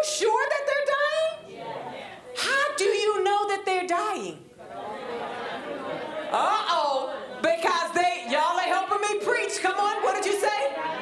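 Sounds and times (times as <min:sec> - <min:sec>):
murmur of voices: 0:00.0 - 0:11.0
woman talking over microphone: 0:02.4 - 0:04.4, 0:06.3 - 0:10.8.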